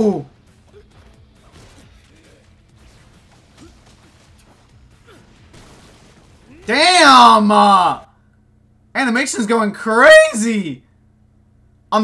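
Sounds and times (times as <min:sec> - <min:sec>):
cartoon fight music: 0:00.0 - 0:08.0.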